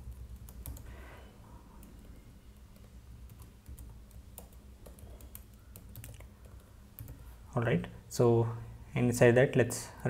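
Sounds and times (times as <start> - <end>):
computer keyboard typing: 0.0 - 0.9, 1.8 - 7.2
low steady hum: 0.0 - 10.0.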